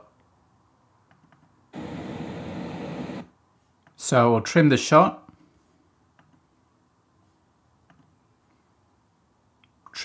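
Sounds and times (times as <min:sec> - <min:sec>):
steady rushing noise: 0:01.8 - 0:03.3.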